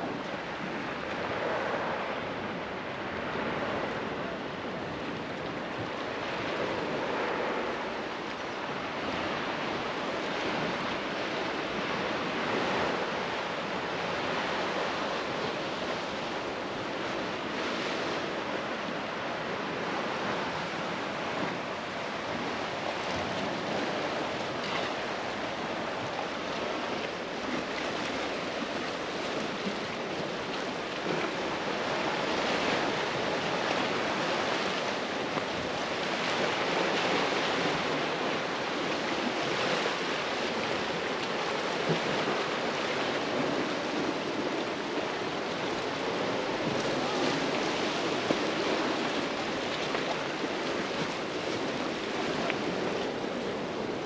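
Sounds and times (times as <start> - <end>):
wind: 0.0 - 54.0
waves washing against rocks: 8.8 - 54.0.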